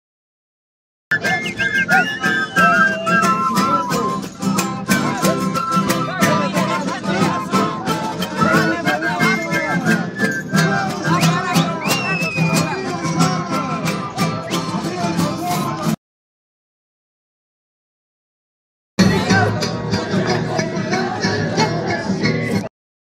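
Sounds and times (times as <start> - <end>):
strummed acoustic guitars: 1.1 - 16.0, 19.0 - 22.7
voices singing: 1.1 - 16.0, 19.0 - 22.7.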